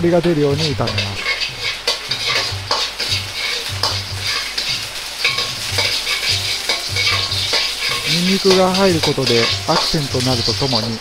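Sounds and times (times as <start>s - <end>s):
garlic sizzling in oil: 0.0s - 11.0s
metal ladle scraping a wok: 0.5s - 11.0s.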